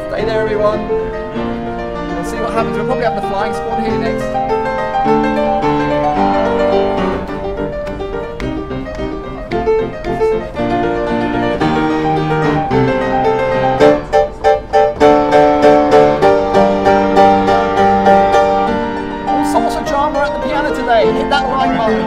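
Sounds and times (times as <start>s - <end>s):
upright piano playing: 0.0s - 22.0s.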